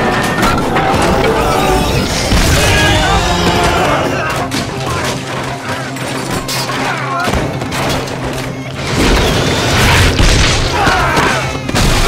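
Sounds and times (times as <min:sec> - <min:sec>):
voices shouting: 0:00.0 - 0:07.4
action film music: 0:00.0 - 0:12.0.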